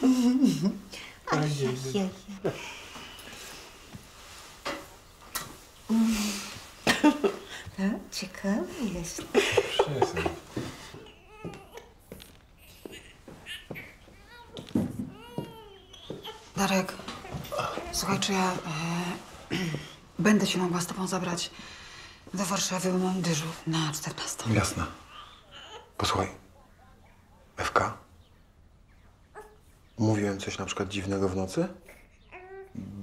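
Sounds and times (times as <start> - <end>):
rustle of clothing: 1.2 - 21.1.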